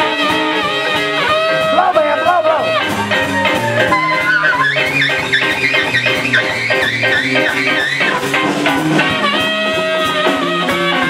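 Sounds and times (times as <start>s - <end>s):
blues band playing: 0.0s - 11.0s
saxophone solo: 0.0s - 11.0s.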